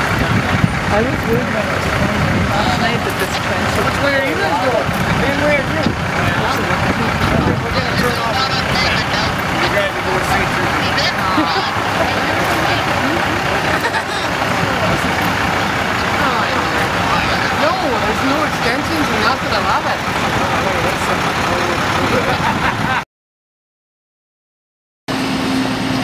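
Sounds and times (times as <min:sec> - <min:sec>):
truck diesel engine running: 0:00.0 - 0:23.0.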